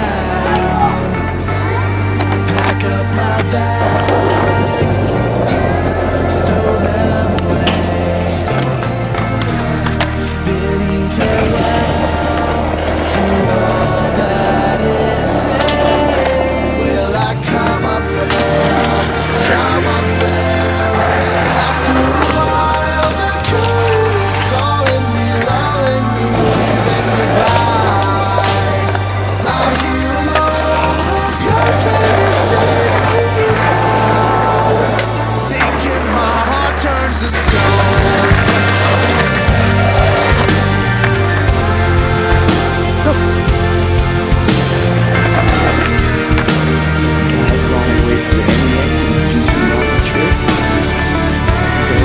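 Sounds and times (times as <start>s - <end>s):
background music with bass line: 0.0s - 52.0s
skateboard clack: 0.0s - 52.0s.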